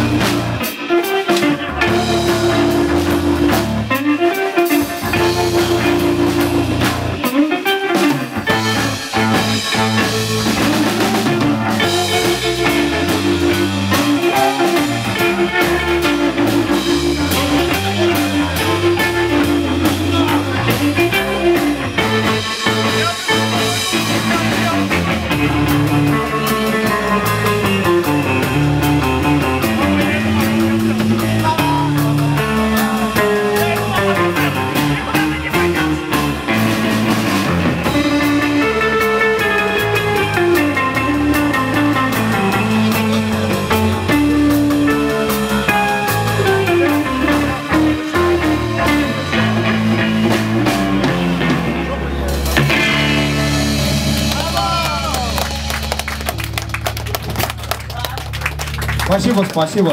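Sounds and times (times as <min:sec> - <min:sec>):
bending guitar notes: 0:00.0 - 0:59.9
drum kit: 0:00.0 - 0:59.9
live rock band playing: 0:00.0 - 0:59.9.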